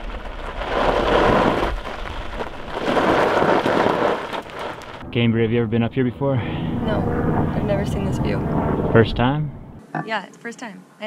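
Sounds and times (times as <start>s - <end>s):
gravel crunching: 0.0s - 5.0s
low rumble: 4.6s - 9.8s.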